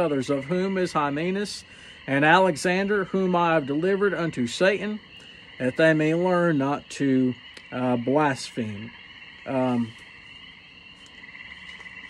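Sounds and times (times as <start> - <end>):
high-pitched animal trilling chorus: 0.0 - 12.0.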